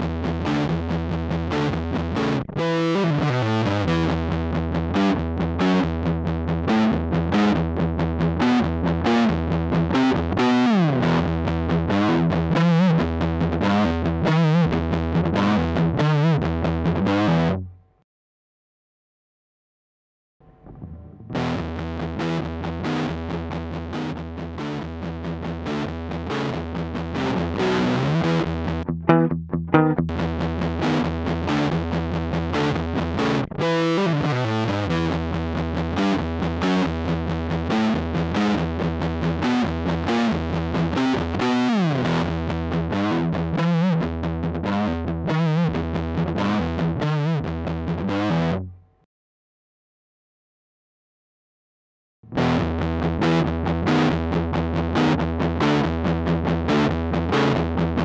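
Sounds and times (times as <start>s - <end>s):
distorted electric guitar riffs: 0.0s - 18.0s, 20.4s - 49.0s, 52.2s - 58.0s
looped backing part: 23.9s - 31.8s.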